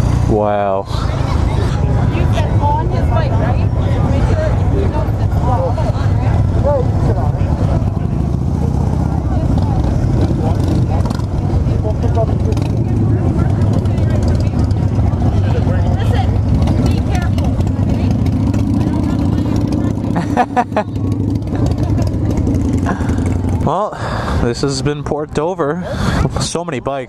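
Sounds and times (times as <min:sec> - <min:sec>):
motorcycle engines rumbling: 0:00.0 - 0:27.0
people talking: 0:00.2 - 0:27.0.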